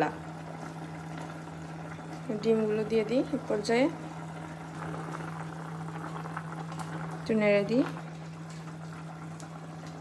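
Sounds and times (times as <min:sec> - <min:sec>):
curry bubbling in a pot: 0:00.0 - 0:10.0.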